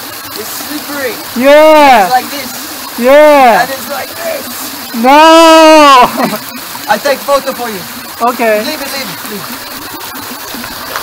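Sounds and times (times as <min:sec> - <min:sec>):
water running over rock: 0:00.0 - 0:11.0
person shouting no: 0:05.0 - 0:06.1
laughter: 0:06.0 - 0:06.4.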